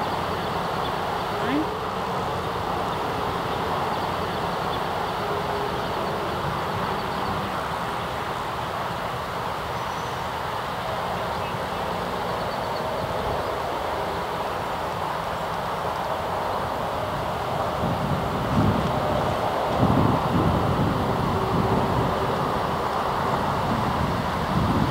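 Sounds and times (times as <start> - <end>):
steady rushing outdoor noise: 0.0 - 24.9.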